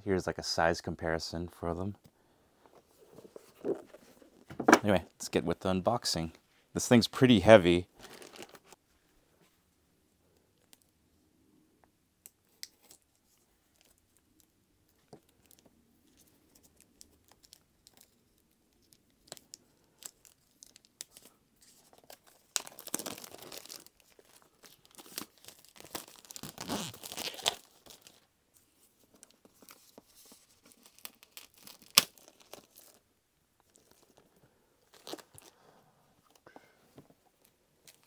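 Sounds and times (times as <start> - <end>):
plastic shrink-wrap tearing: 8.0 - 8.8, 22.0 - 28.2, 30.6 - 33.0, 34.9 - 35.5.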